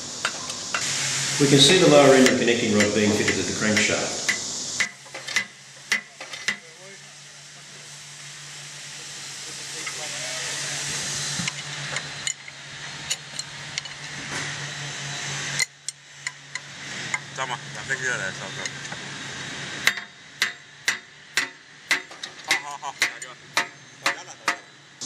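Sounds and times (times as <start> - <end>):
steady hiss: 0.0 - 25.0.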